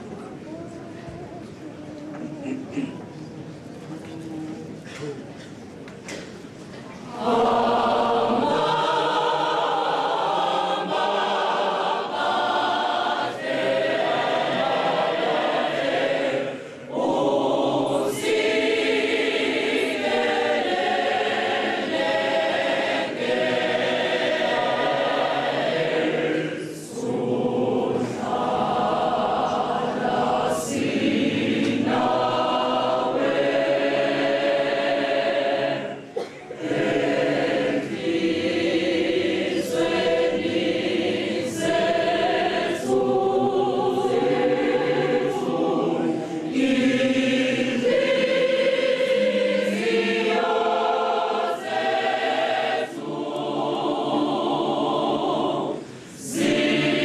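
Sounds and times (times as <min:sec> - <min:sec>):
church choir singing: 0:07.0 - 0:57.0.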